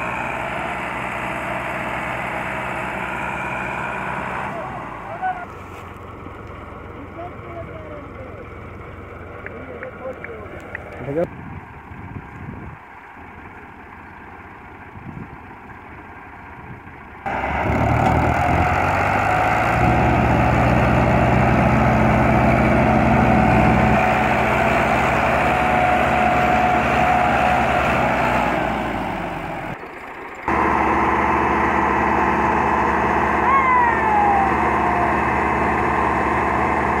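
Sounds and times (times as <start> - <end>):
tractor diesel engines under load: 0.0 - 37.0.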